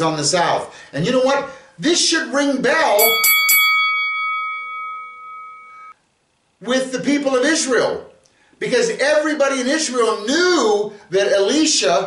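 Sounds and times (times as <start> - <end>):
small bell ringing: 3.0 - 6.0.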